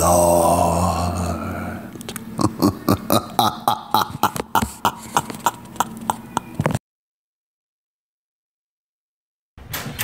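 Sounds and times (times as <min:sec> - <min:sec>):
man groaning: 0:00.0 - 0:06.3.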